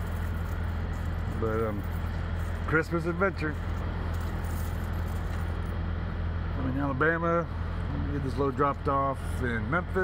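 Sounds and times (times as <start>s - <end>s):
idling diesel truck engines: 0.0s - 10.0s.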